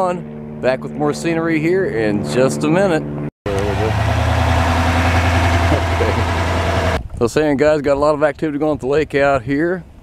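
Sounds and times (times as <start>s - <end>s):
engine idling: 3.5s - 7.0s.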